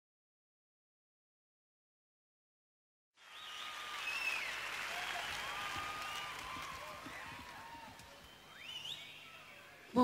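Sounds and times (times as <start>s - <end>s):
audience applauding: 3.2s - 9.8s.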